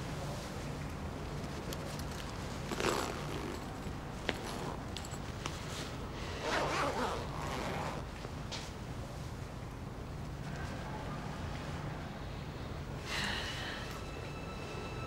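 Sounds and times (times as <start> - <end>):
bag zipper pulled open: 2.6 - 4.9, 6.4 - 8.1.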